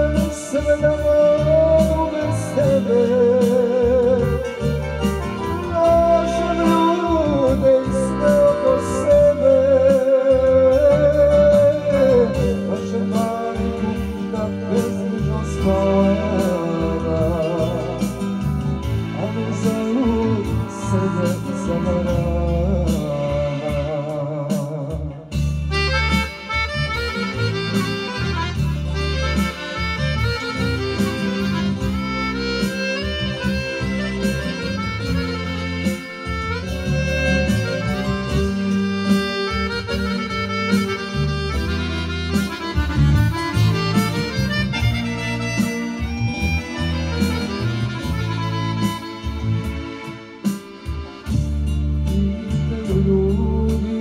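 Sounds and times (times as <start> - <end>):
man singing into a microphone: 0.0 - 25.4, 52.0 - 54.0
accordion and keyboard tune: 0.0 - 54.0
steady bass beat: 0.0 - 54.0.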